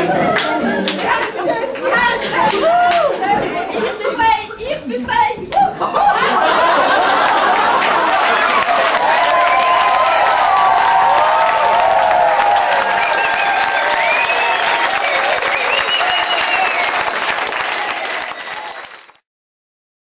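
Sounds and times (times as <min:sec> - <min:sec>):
audience applauding: 0:00.0 - 0:03.3, 0:06.2 - 0:19.2.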